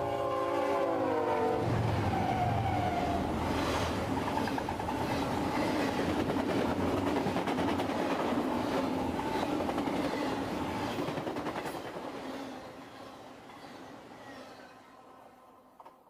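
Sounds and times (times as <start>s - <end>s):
train wheels clattering on rails: 3.4s - 14.7s.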